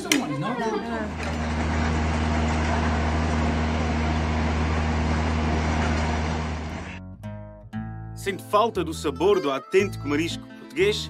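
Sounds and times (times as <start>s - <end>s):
engine hum: 0.4s - 7.2s.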